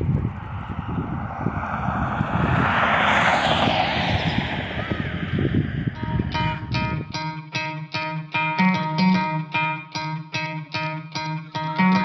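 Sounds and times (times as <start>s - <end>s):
traffic noise: 0.0s - 7.0s
vehicle passing: 0.0s - 7.0s
wind buffeting microphone: 0.0s - 7.4s
guitar music: 6.0s - 12.0s.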